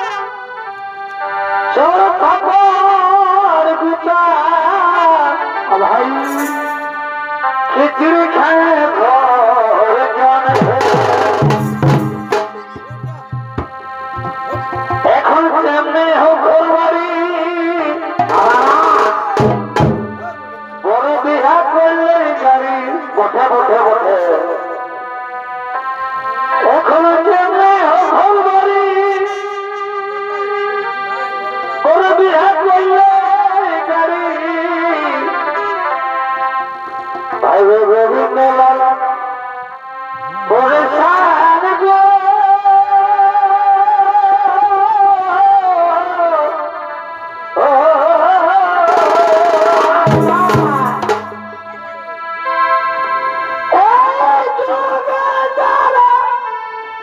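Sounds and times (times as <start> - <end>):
wind band playing loud melody: 0.0 - 2.2, 5.4 - 8.0, 10.4 - 15.4, 17.9 - 22.1, 24.5 - 32.1, 48.9 - 53.8
trumpet: 0.0 - 2.5, 4.8 - 33.6, 34.8 - 41.6, 46.4 - 55.2.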